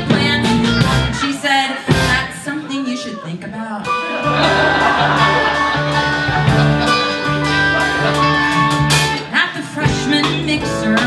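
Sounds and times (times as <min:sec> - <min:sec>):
live pop-rock band playing: 0:00.0 - 0:02.9, 0:03.7 - 0:11.0
electric guitar: 0:03.9 - 0:11.0.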